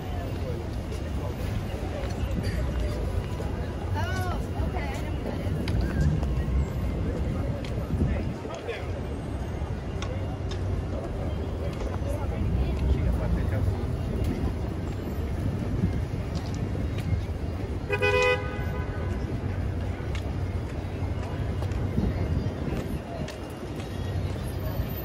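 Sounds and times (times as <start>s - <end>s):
passers-by talking: 0.0s - 25.0s
traffic rumble: 0.0s - 25.0s
car horn honk: 17.9s - 19.0s.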